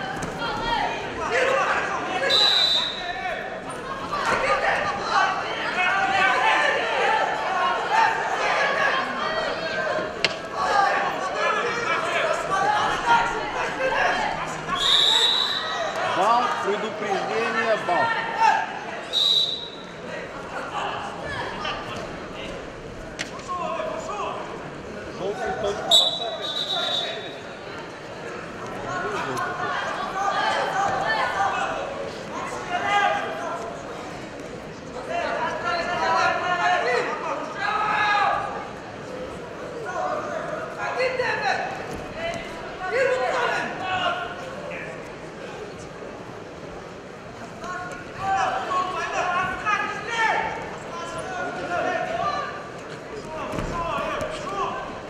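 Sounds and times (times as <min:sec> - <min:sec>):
referee's whistle: 0:02.2 - 0:03.2, 0:14.8 - 0:15.9, 0:19.0 - 0:19.9, 0:25.9 - 0:27.5.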